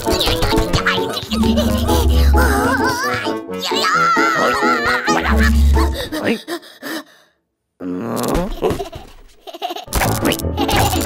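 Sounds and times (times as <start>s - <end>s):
cartoon music with bass: 0.0s - 6.0s, 9.9s - 11.0s
cartoon character giggling: 1.3s - 3.1s, 4.3s - 6.4s, 8.2s - 11.0s.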